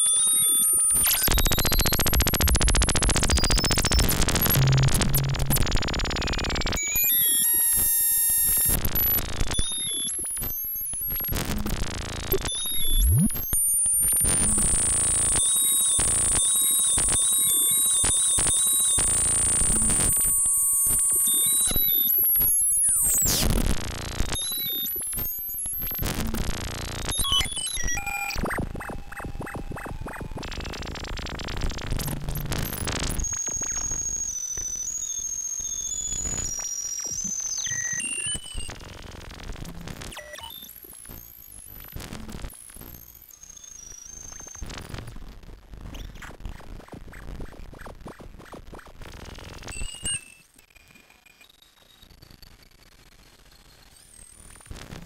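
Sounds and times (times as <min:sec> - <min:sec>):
electronic clicks and stutter: 0:00.0 - 0:45.2
harsh glitchy electronic noise: 0:00.0 - 0:45.3, 0:45.9 - 0:55.0
high stepped beeps: 0:00.4 - 0:06.7.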